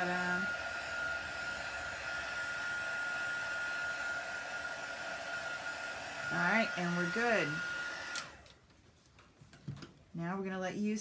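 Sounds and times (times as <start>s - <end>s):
heat tool blowing with whine: 0.0s - 8.4s.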